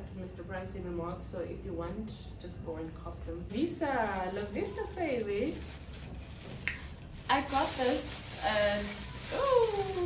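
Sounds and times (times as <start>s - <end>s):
plastic bag rustling: 3.0s - 10.0s.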